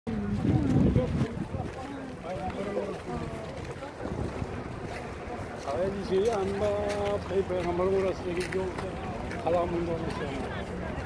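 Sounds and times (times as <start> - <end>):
wind buffeting microphone: 0.1 - 9.3
people talking in background: 0.1 - 11.0.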